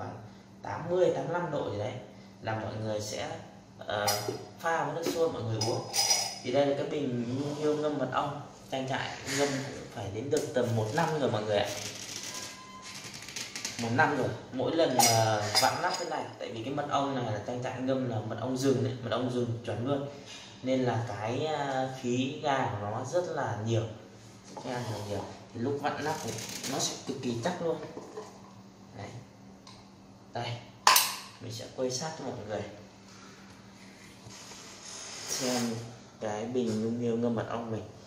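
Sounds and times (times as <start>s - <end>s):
steady low hum: 0.0s - 38.0s.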